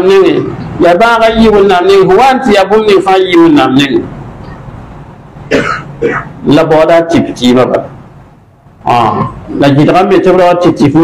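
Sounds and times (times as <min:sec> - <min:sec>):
man speaking: 0:00.0 - 0:04.1, 0:06.4 - 0:08.0, 0:08.8 - 0:11.0
man clearing throat: 0:05.5 - 0:06.4.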